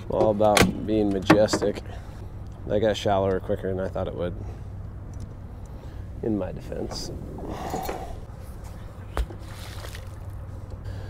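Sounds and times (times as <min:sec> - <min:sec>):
steady low rumble: 0:00.0 - 0:11.0.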